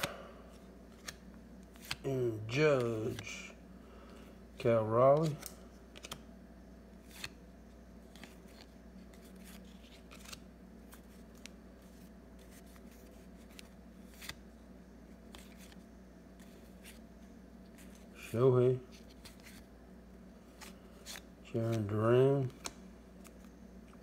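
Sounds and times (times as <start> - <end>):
cards flipped and squared: 0.0 - 3.5, 4.9 - 6.3, 7.0 - 7.4, 8.0 - 14.5, 15.1 - 17.0, 17.7 - 19.7, 20.5 - 24.0.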